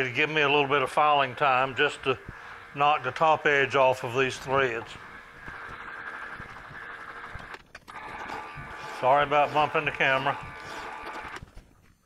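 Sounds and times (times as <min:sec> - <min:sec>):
metal lathe running: 0:00.0 - 0:11.4.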